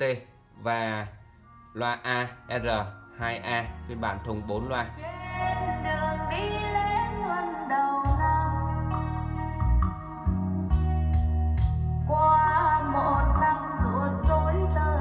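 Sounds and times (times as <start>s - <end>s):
guitar: 0.0s - 15.0s
woman singing a ballad: 5.0s - 9.9s, 12.0s - 15.0s
stepping bass line: 8.1s - 12.3s.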